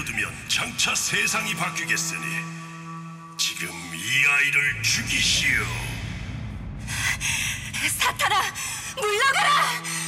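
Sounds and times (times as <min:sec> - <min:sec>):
low dark rumble: 0:03.6 - 0:09.3.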